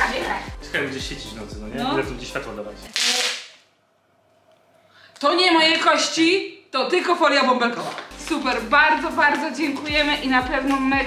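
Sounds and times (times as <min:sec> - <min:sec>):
bubble wrap popping: 0:02.9 - 0:03.6.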